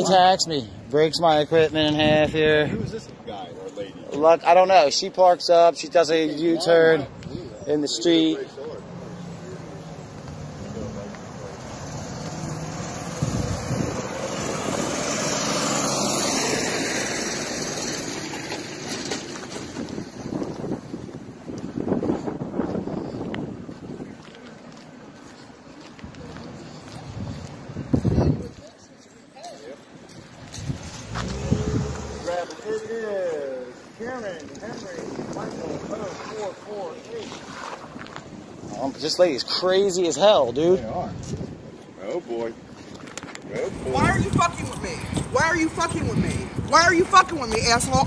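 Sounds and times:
wind buffeting microphone: 1.7 - 3.5, 12.7 - 15.2, 19.6 - 24.4, 26.0 - 28.7, 30.2 - 32.7, 34.1 - 39.0, 40.5 - 48.0
car passing: 8.1 - 21.0, 30.3 - 40.8.

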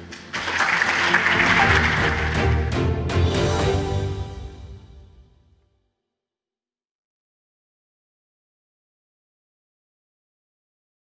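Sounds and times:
audience applauding: 0.0 - 3.3
music: 0.0 - 6.0.

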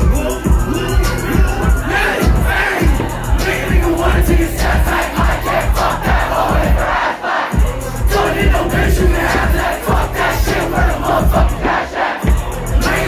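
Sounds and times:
concert crowd shouting: 0.0 - 13.0
hip-hop track with heavy bass: 0.0 - 13.0.

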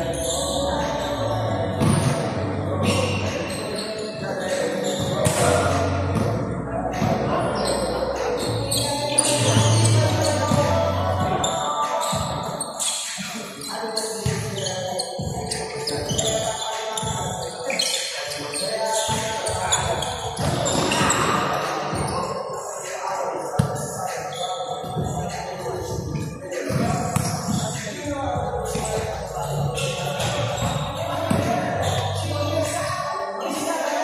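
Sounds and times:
players' voices echoing: 0.0 - 34.0.

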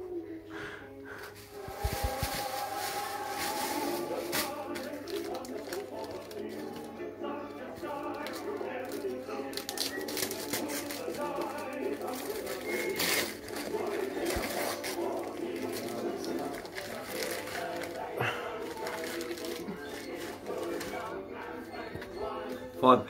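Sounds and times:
background music: 0.0 - 23.0
wrapping paper crinkling and tearing: 1.3 - 6.9, 7.8 - 21.1.

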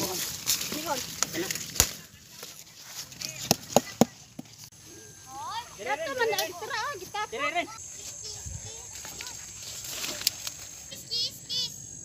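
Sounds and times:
stem snapping: 0.4 - 2.0, 9.0 - 10.6.

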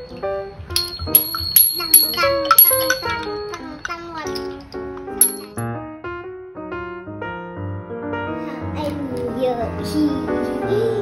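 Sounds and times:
gentle piano music: 0.0 - 11.0
mallet striking toy xylophone: 0.7 - 5.7.

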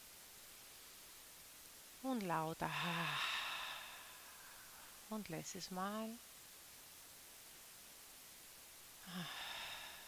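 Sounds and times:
woman exhaling ha through mouth: 2.7 - 4.8, 9.0 - 10.0.

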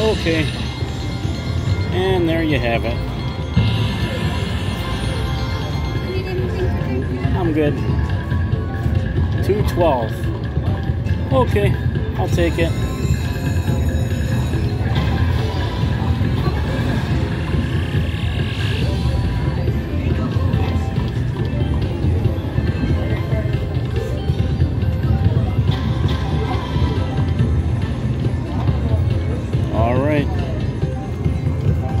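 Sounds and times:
casino machines din: 0.0 - 32.0
slot machine music and jingles: 0.0 - 32.0
murmur of voices: 2.5 - 32.0.

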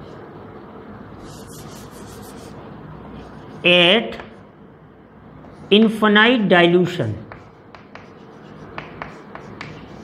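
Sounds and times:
chalk scratching on blackboard: 1.2 - 2.6, 7.3 - 10.0.

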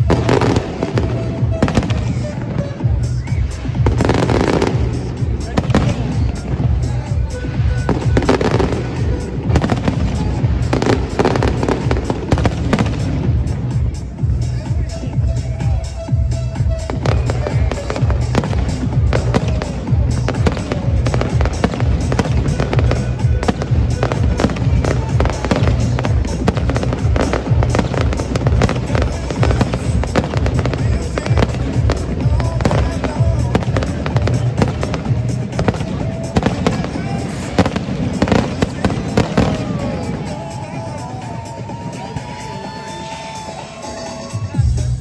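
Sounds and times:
firework bangs and crackles: 0.0 - 45.0
music with heavy bass beat: 0.0 - 45.0.

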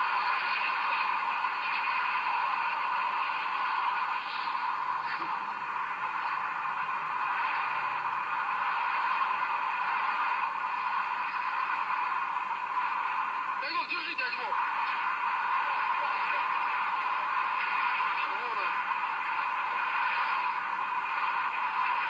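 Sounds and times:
indistinct murmur: 0.0 - 22.0.

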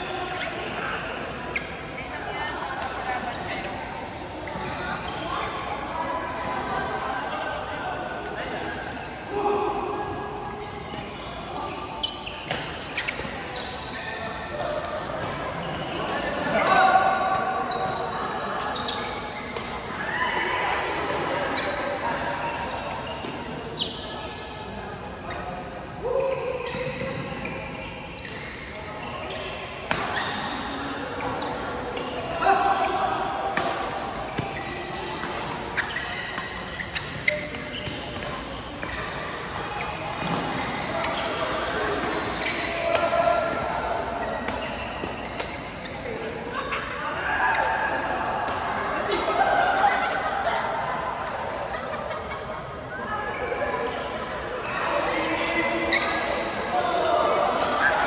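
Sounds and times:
indistinct chatter: 0.0 - 58.0
rackets hitting shuttlecock: 33.5 - 43.7.

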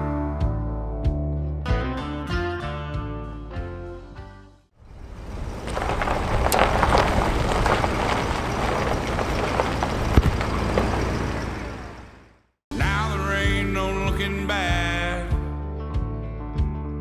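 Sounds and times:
car engine running: 4.8 - 12.4
road and wind noise: 4.8 - 12.4.

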